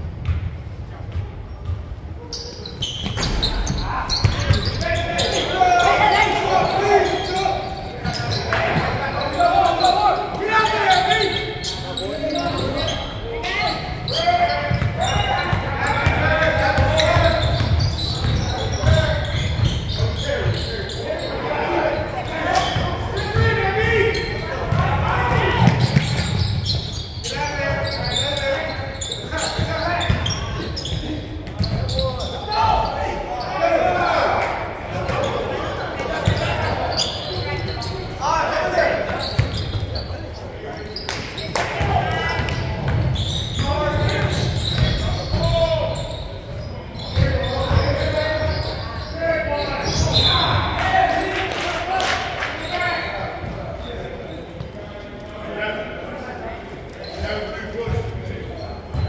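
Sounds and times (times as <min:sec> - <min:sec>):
voices calling out: 0:02.3 - 0:54.0.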